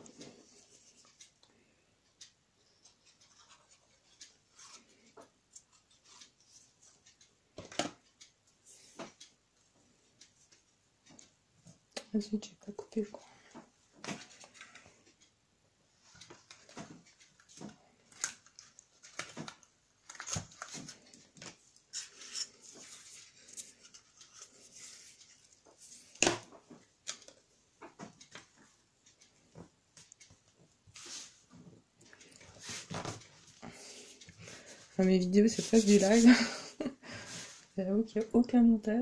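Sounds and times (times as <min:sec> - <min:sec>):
paper rustling: 0:16.2 - 0:26.2, 0:32.2 - 0:36.5.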